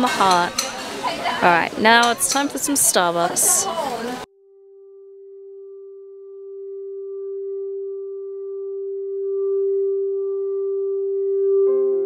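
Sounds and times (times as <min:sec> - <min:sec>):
held pure tone: 0:04.4 - 0:12.0.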